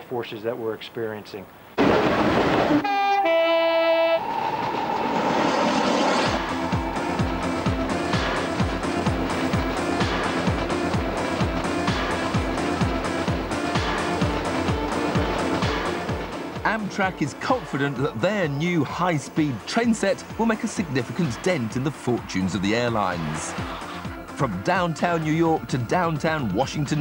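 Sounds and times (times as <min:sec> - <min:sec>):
train rushing past: 0:02.6 - 0:27.0
two-tone train horn: 0:02.8 - 0:04.6
background music with steady beat: 0:06.3 - 0:27.0.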